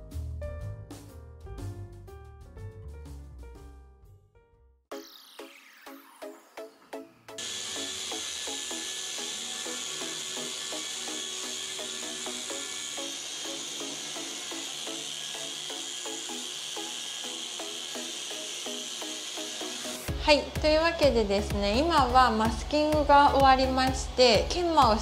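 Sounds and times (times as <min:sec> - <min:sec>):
background music: 0:00.0 - 0:25.0
machine polisher whirring: 0:07.4 - 0:23.1.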